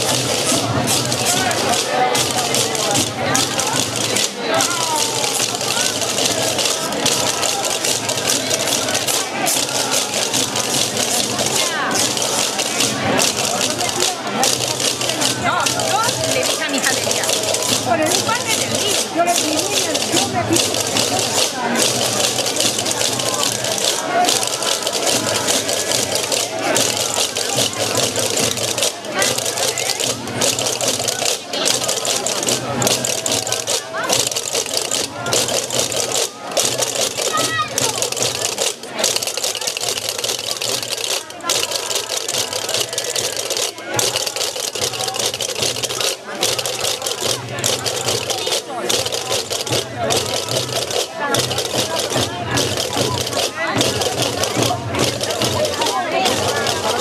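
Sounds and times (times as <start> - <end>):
crowd voices: 0.0 - 57.0
hand drums beating: 0.0 - 57.0.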